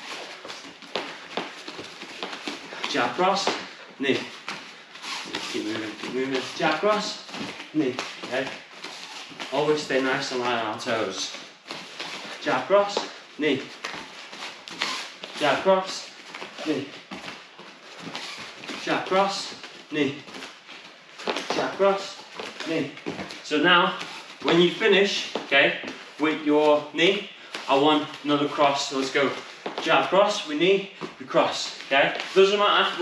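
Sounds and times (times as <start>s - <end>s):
bare feet stepping on mats: 0.0s - 33.0s.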